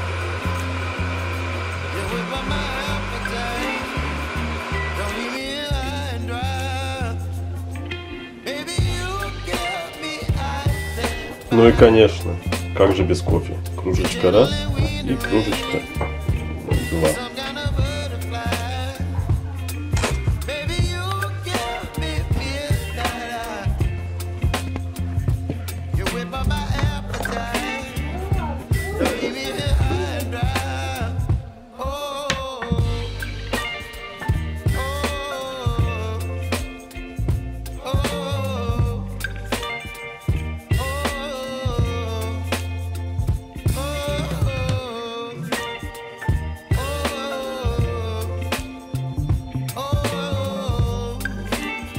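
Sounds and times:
blender motor whirring: 0.0 - 6.0
music with bass and drum beat: 0.0 - 8.0, 8.7 - 31.5, 32.7 - 51.9.

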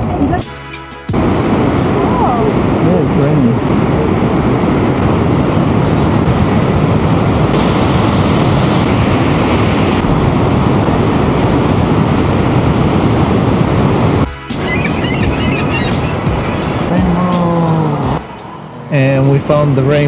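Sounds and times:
waterfall rushing: 1.2 - 18.9.

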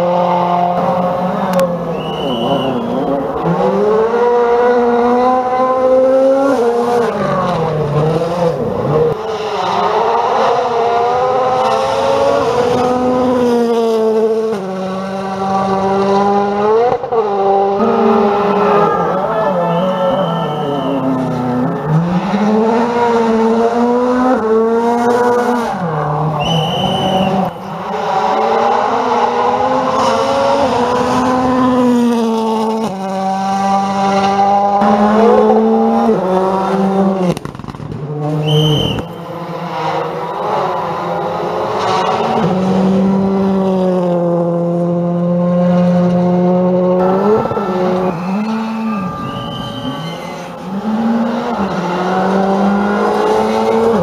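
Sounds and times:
rally car engines revving: 0.0 - 54.0
short high whistles: 1.9 - 3.1, 26.4 - 27.4, 38.4 - 39.2, 48.0 - 50.4.

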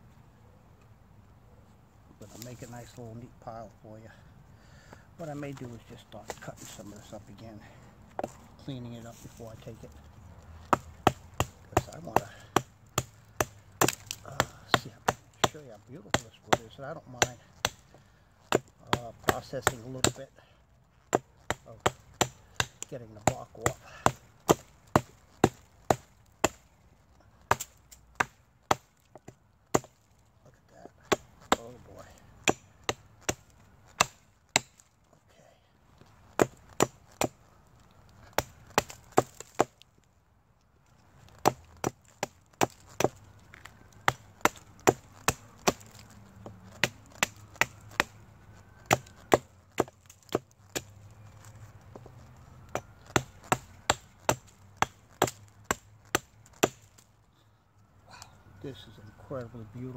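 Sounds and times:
hatchet chopping wood: 5.3 - 7.0, 8.1 - 8.4, 10.5 - 20.3, 21.1 - 26.7, 27.4 - 30.1, 30.8 - 34.9, 36.0 - 37.5, 38.2 - 39.9, 41.3 - 57.1.

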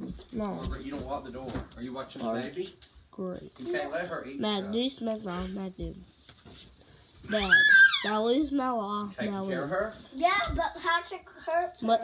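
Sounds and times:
high-pitched vocal squeal: 7.3 - 8.2.

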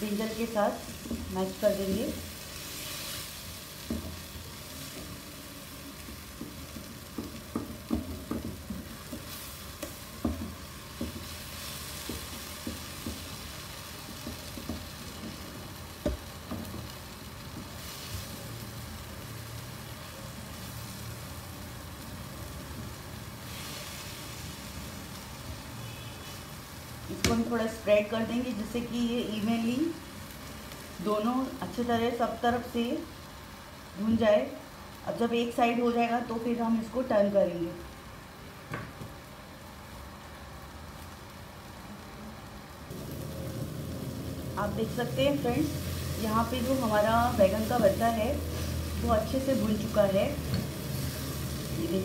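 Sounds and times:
food sizzling in a pan: 0.0 - 52.0.

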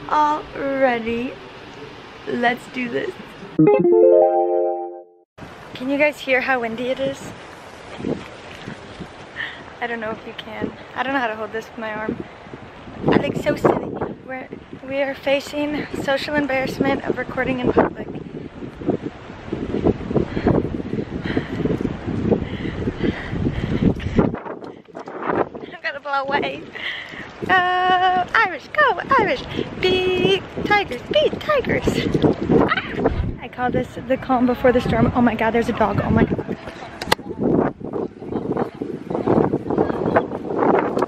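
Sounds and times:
wind buffeting microphone: 6.9 - 41.0.

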